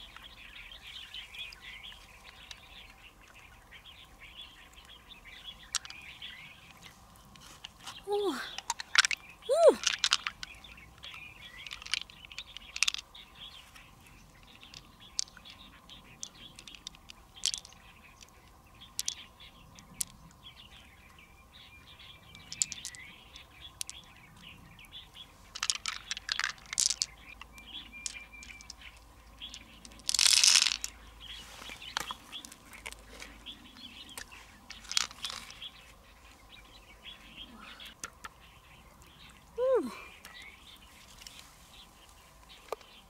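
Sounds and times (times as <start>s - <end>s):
pearls clicking together: 5.6s - 6.8s, 7.6s - 13.1s, 14.4s - 20.3s, 22.3s - 24.1s, 25.5s - 31.0s, 34.1s - 35.7s.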